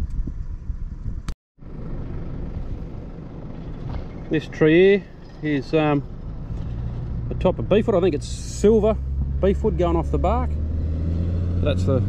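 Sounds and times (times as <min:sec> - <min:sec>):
wind rumble on microphone: 0:00.0 - 0:05.4.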